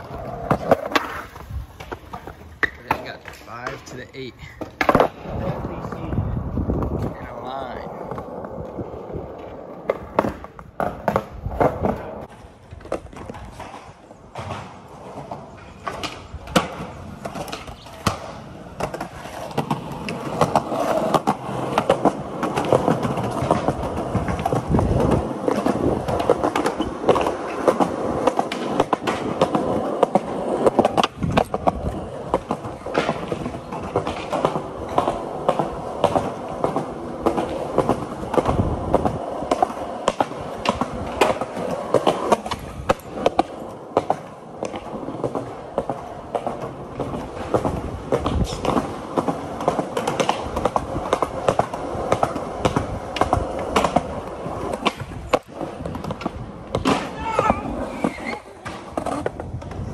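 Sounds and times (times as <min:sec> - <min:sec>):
skateboard clacking on ground: 0:00.0 - 0:59.9
skateboard wheels rolling on concrete: 0:00.0 - 0:59.9.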